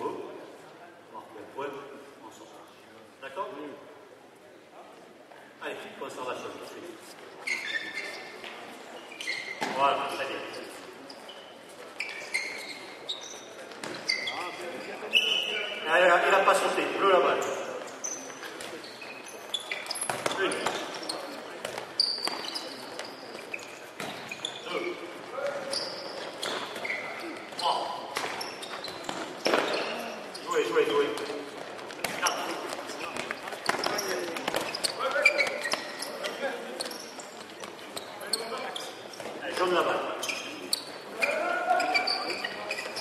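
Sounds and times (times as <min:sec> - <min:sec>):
sports shoes squeaking: 0:06.4 - 0:43.0.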